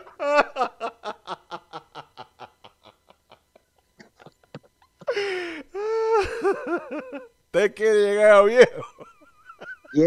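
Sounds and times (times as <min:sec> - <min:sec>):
man laughing: 0:00.0 - 0:07.4, 0:08.0 - 0:10.0.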